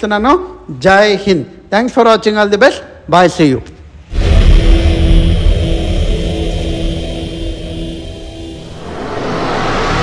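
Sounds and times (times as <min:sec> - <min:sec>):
steady hum: 0:03.9 - 0:10.0
deep rumble: 0:04.1 - 0:10.0.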